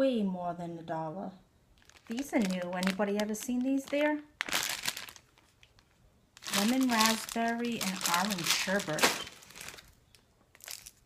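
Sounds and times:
plastic candy bag crinkling: 1.7s - 11.0s.

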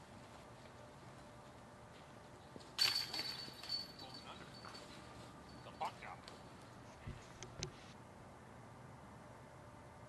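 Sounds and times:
disc hitting metal chains: 2.8s - 5.7s.

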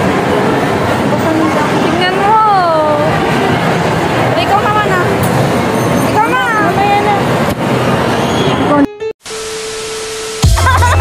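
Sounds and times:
crowd din in a mall: 0.0s - 9.1s.

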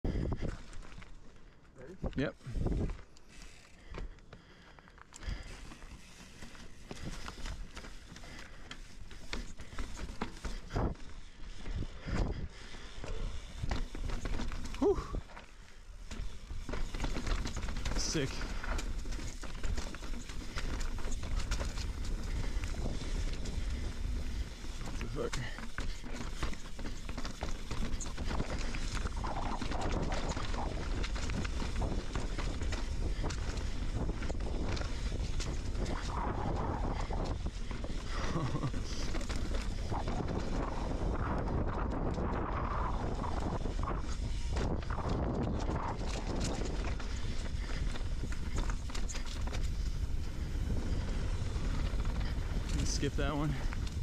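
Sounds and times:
wind rumbling on microphone: 0.0s - 1.0s, 1.8s - 3.1s, 5.2s - 15.4s, 16.1s - 54.0s
bike rattling: 0.1s - 54.0s
tyres rumbling over dirt and rock: 13.0s - 54.0s.

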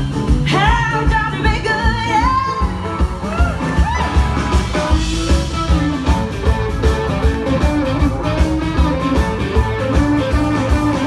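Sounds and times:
rock band playing: 0.0s - 11.0s
woman wailing high: 2.6s - 4.5s.

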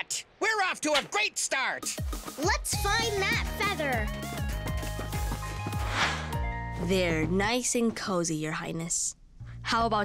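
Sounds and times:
cartoon background music: 1.8s - 7.6s
swoosh: 5.7s - 6.5s.

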